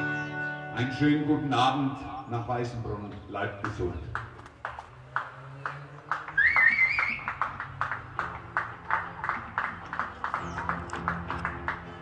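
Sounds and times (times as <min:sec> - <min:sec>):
hands clapping in applause: 0:03.6 - 0:12.0
rising whistle: 0:06.3 - 0:07.4.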